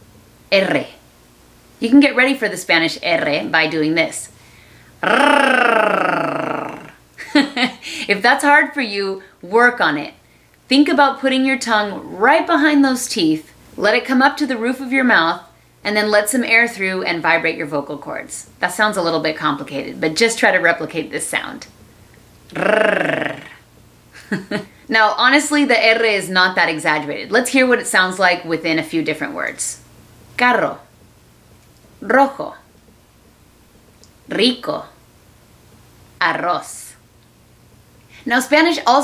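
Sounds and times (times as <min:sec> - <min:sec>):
woman rolling an r: 0:05.0 - 0:07.8, 0:22.4 - 0:23.8.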